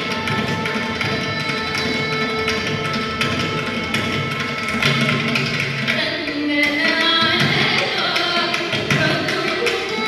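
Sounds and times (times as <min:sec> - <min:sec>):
violin melody: 0:00.0 - 0:05.9, 0:09.0 - 0:10.0
mridangam strokes: 0:00.0 - 0:10.0.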